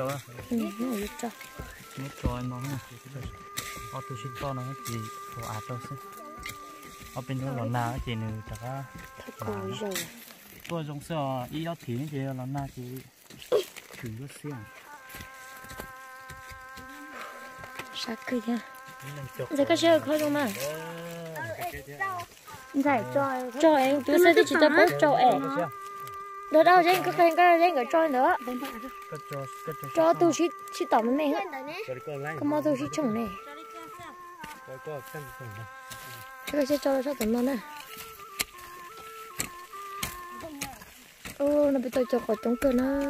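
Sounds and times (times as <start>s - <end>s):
high-pitched drone of held tones: 0.0s - 10.1s, 14.1s - 43.0s
flying insect buzzing: 0.0s - 10.7s, 14.3s - 43.0s
person's high pitch-bending voice: 30.0s - 34.3s, 36.5s - 37.9s, 40.1s - 43.0s.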